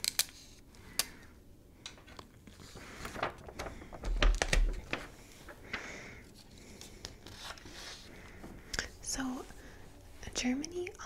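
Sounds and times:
woman speaking softly: 9.0 - 9.5, 10.2 - 11.0.

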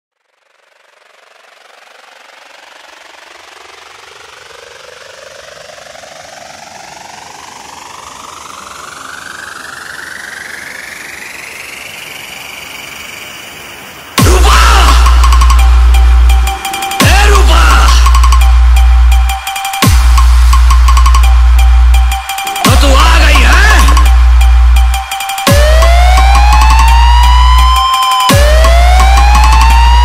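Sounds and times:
electronic riser whoosh: 0.3 - 30.0.

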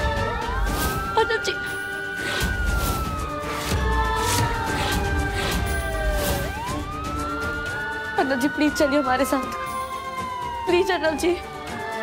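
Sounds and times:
background music: 0.0 - 12.0
police siren wailing: 0.0 - 12.0.

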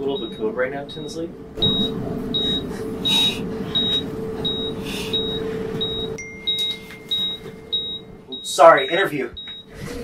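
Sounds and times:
steady high monitor tone: 0.0 - 9.7
patient monitor beeping: 0.0 - 10.0
steady low hum: 0.0 - 10.0.

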